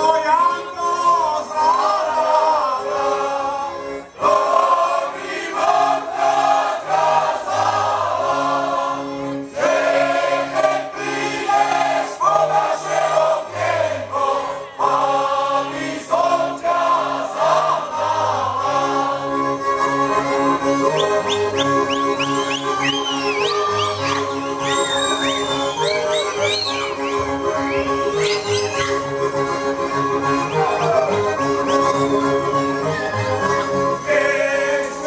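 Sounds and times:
folk string band: 0.0s - 35.0s
group singing folk song: 0.4s - 35.0s.

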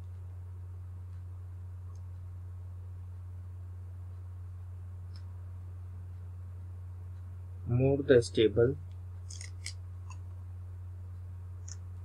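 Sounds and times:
low electrical hum: 0.0s - 12.0s
stylus scratching tablet screen: 9.3s - 9.7s.

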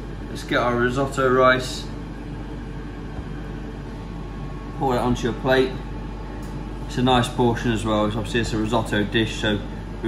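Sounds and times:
ventilation hum: 0.0s - 10.0s.

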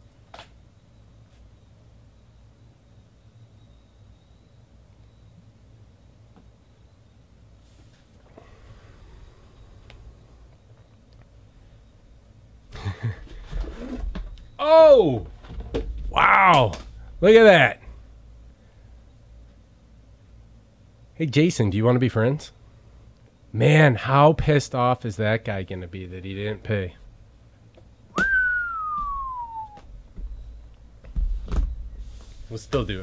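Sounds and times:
loud vocal exclamation: 14.6s - 15.2s, 16.1s - 16.8s, 28.2s - 29.8s
long falling whistle: 28.1s - 29.9s.

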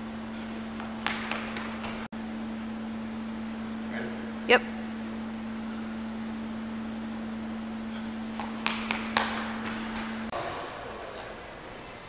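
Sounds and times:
steady hum: 0.0s - 12.0s
running footsteps on gym floor: 0.4s - 2.1s, 8.0s - 10.3s.

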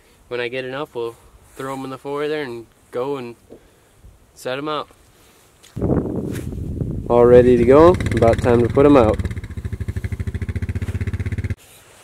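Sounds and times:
vehicle engine running: 7.2s - 11.6s.

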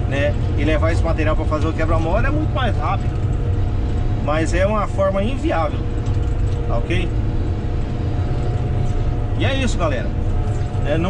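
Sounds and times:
diesel engine low rumble: 0.0s - 11.0s.

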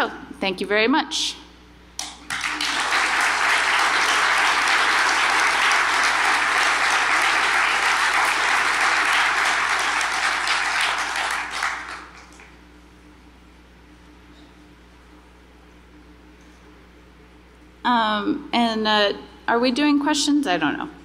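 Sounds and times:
audience applauding: 2.2s - 12.6s.

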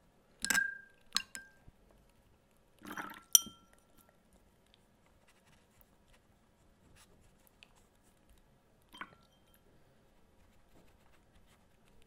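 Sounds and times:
brush clinking glass rim: 3.3s - 4.1s.

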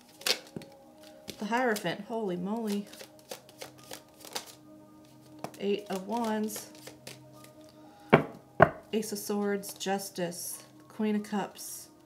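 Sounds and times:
cards tapping: 2.6s - 4.6s, 5.4s - 7.2s.

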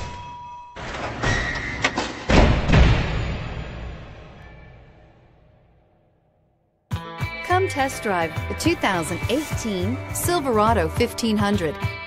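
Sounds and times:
deep ringing thud: 2.2s - 5.3s.

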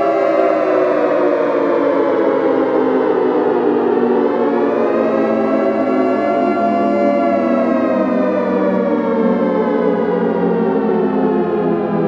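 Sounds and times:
warning siren wailing: 0.0s - 12.0s.

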